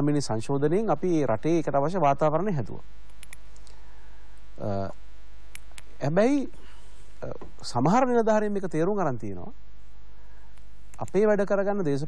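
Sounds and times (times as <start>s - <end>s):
man speaking: 0.0s - 2.8s, 4.6s - 5.0s, 6.0s - 6.6s, 7.2s - 9.6s, 11.0s - 12.0s
low electrical hum: 0.0s - 12.0s
faint clicks: 3.0s - 4.5s, 10.5s - 11.2s.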